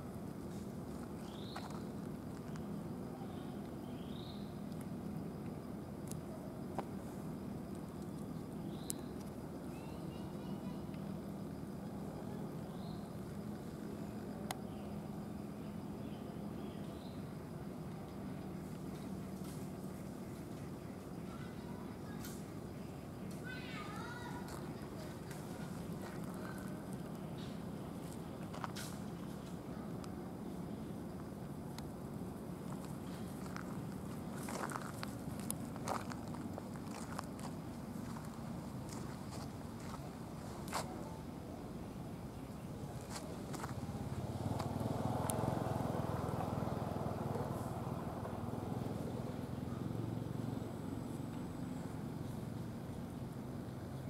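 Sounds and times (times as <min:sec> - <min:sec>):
low outdoor rumble: 0:00.0 - 0:54.0.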